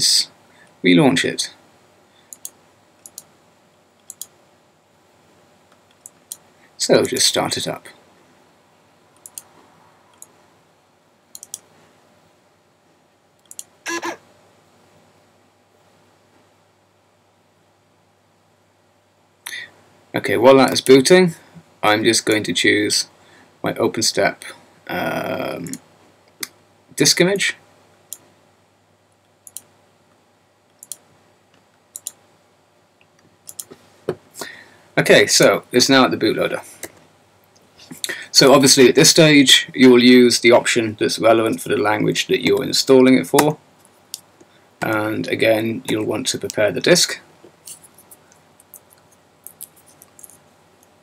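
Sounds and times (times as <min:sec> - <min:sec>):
computer mouse clicks: 0:02.3 - 0:03.3, 0:04.0 - 0:04.4, 0:09.2 - 0:09.5, 0:10.1 - 0:10.3, 0:11.3 - 0:11.7, 0:13.4 - 0:13.7, 0:29.4 - 0:29.7, 0:30.7 - 0:31.0, 0:31.9 - 0:32.2, 0:33.5 - 0:33.8.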